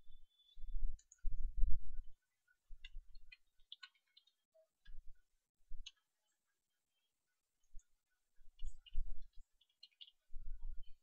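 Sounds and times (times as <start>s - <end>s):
computer keyboard keys tapping: 2.8s - 5.0s.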